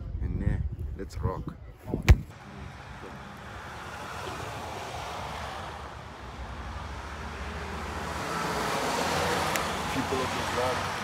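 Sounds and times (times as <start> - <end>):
wind on microphone: 0.0 - 2.4
road traffic passing: 2.3 - 11.0.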